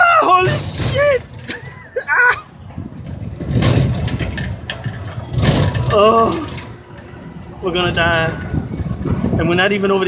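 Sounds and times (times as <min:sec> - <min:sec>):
wind buffeting microphone: 0:00.4 - 0:10.0.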